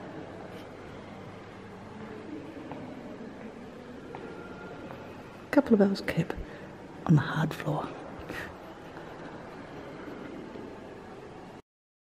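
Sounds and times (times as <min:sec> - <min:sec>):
hall ambient hiss and rumble: 0:00.0 - 0:11.6.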